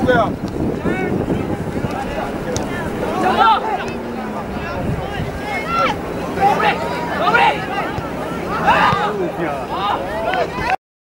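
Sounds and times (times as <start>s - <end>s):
distant shouts: 0.0s - 10.8s
wind buffeting microphone: 0.0s - 10.8s.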